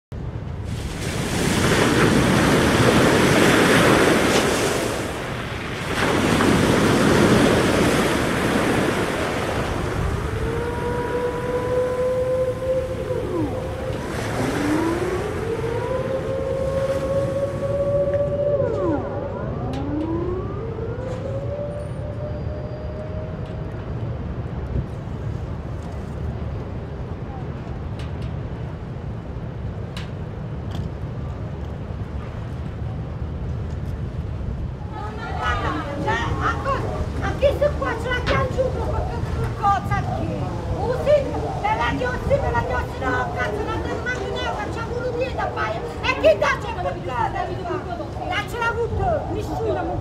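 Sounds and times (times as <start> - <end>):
sea waves surging against quay: 0.2 - 20.2, 24.3 - 50.0
long wailing gliding tones: 7.2 - 24.3, 34.8 - 50.0.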